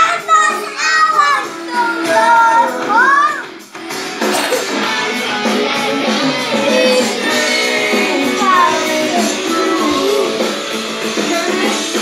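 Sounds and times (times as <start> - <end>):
boy singing into microphone: 0.0 - 3.5, 6.1 - 10.5, 11.1 - 12.0
karaoke backing music: 0.0 - 12.0.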